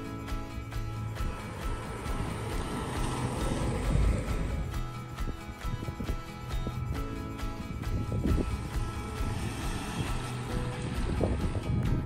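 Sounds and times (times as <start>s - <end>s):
background music: 0.0s - 12.0s
rushing noise: 1.1s - 5.1s, 7.7s - 11.7s.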